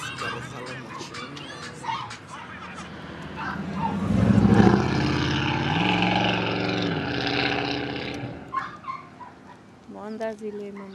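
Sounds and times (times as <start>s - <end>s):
vehicle engine revving: 0.0s - 8.9s.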